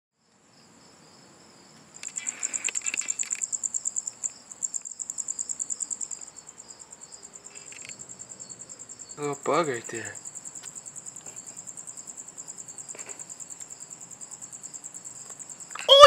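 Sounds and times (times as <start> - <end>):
crickets chirping: 0.2 - 16.0.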